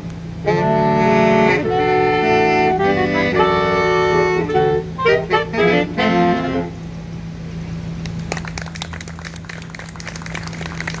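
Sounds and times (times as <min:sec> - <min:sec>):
steady low hum: 0:00.0 - 0:11.0
saxophone quartet playing chords: 0:00.1 - 0:07.4
scattered applause: 0:08.0 - 0:11.0.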